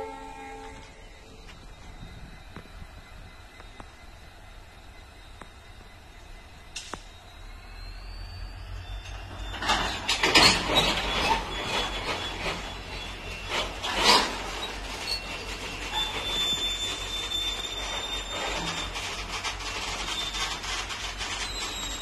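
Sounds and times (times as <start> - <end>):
high wheel squeals: 0.0 - 3.7, 6.6 - 22.0
train rumble: 0.0 - 22.0.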